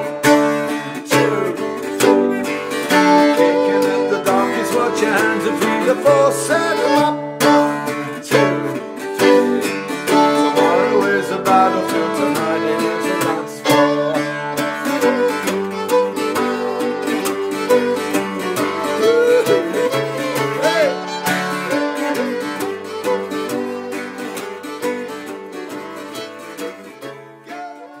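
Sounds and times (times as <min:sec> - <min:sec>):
fiddle: 0:00.0 - 0:28.0
plucked string instrument: 0:00.0 - 0:28.0.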